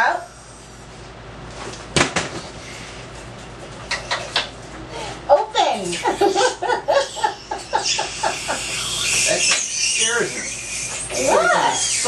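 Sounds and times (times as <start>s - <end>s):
dental suction hissing and gurgling: 7.2s - 12.0s.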